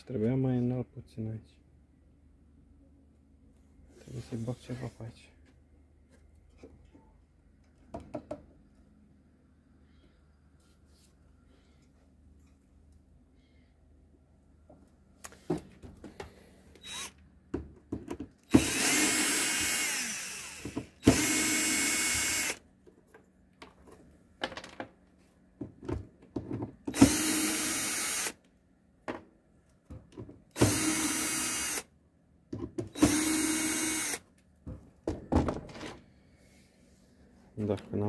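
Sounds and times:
power drill whine: 0:16.8 - 0:17.2, 0:18.5 - 0:22.6, 0:26.9 - 0:28.4, 0:30.5 - 0:31.9, 0:32.9 - 0:34.2.

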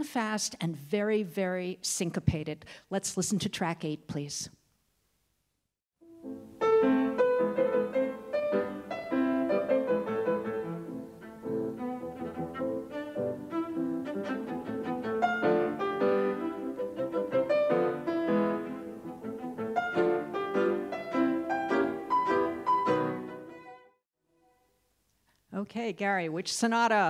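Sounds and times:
bowed strings chamber music: 0:06.7 - 0:24.6.

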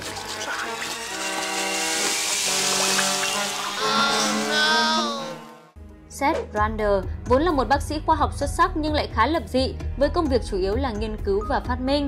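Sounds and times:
wet hissing liquid: 0:00.0 - 0:04.7.

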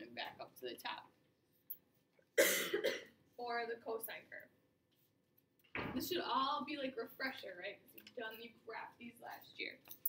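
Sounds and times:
person coughing: 0:02.4 - 0:03.2.

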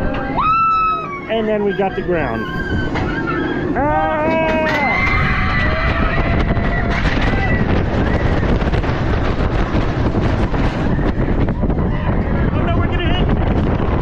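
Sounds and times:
roller coaster train rumbling: 0:00.0 - 0:14.0
wind rushing over microphone: 0:00.0 - 0:14.0
riders screaming: 0:00.1 - 0:08.8.

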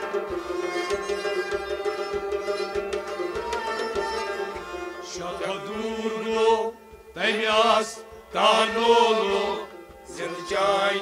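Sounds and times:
harmonium: 0:00.0 - 0:11.0
rabab: 0:00.0 - 0:11.0
men singing: 0:05.0 - 0:11.0.

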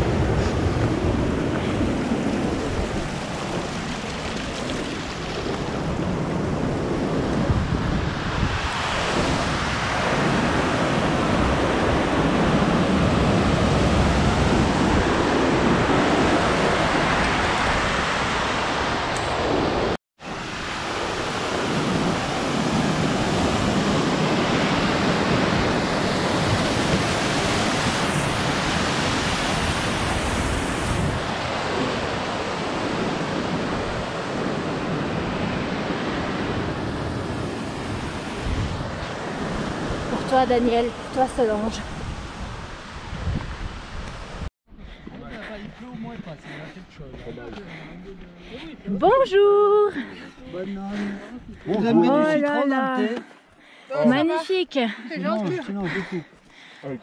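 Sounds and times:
wind buffeting microphone: 0:00.0 - 0:51.8
mountain torrent rushing: 0:00.0 - 0:57.0.

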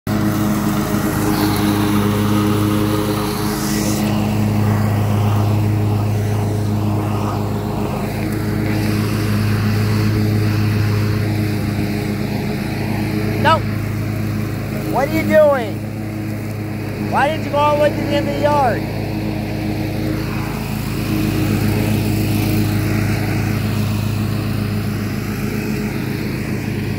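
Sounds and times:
riding mower engine running: 0:00.0 - 0:26.9.

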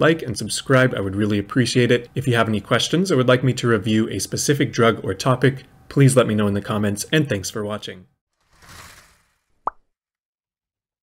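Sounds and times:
soft whoosh: 0:08.4 - 0:09.6.

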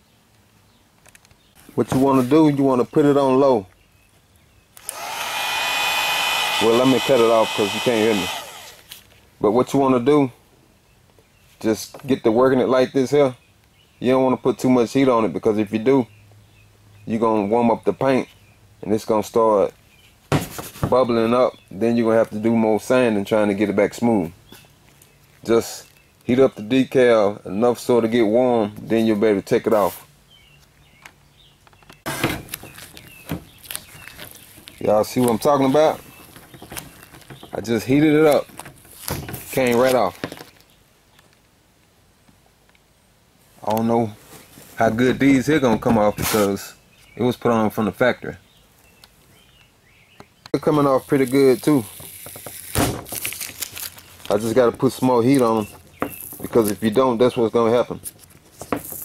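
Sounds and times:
sharp clicks: 0:04.7 - 0:06.9
heat gun fan blowing: 0:04.8 - 0:09.0
decal peeling off crackly rustling: 0:32.4 - 0:40.7, 0:50.8 - 0:57.0.

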